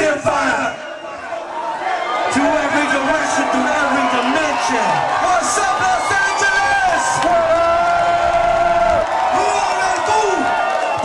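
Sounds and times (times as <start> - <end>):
concert crowd cheering and shouting: 0.0 - 11.0.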